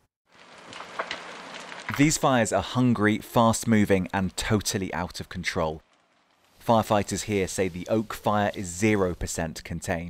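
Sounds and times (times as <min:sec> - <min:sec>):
wildfire crackling: 0:00.2 - 0:09.6
fire snapping: 0:00.3 - 0:09.0.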